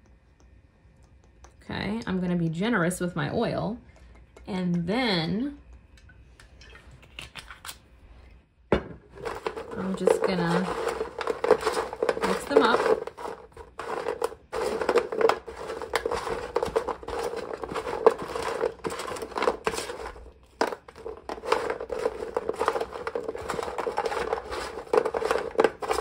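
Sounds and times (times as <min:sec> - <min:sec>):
bread cubes tossed on metal pan: 0:09.1 - 0:26.0.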